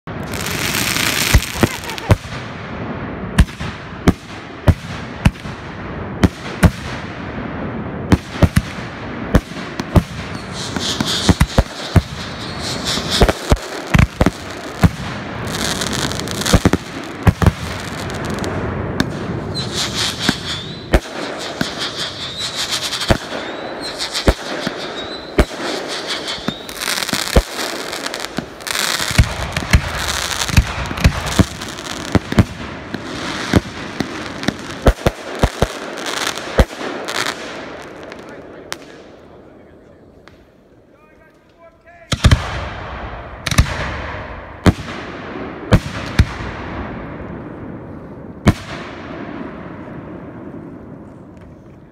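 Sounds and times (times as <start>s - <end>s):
crackling hiss: 8.2s - 42.2s
firework shells bursting: 9.8s - 18.2s, 19.0s - 35.9s.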